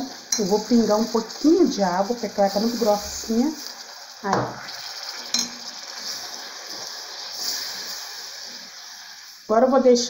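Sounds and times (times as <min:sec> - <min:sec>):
caramel sizzling in a pot: 0:00.0 - 0:10.0
spoon clinking against pot: 0:05.3 - 0:05.6.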